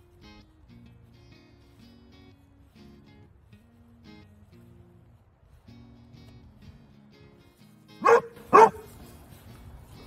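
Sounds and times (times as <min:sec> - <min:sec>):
soft background music: 0:00.0 - 0:10.0
dog barking: 0:08.0 - 0:08.9.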